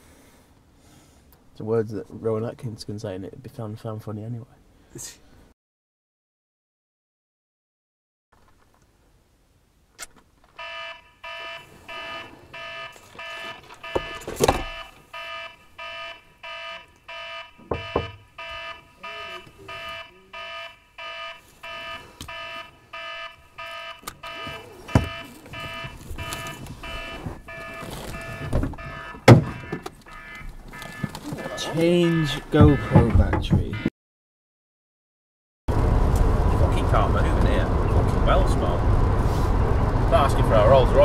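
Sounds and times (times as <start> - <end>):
car warning chime dinging: 10.6 - 33.9
thumps and knocks in car: 17.6 - 18.2, 24.9 - 26.3, 28.3 - 30.0, 32.6 - 33.8.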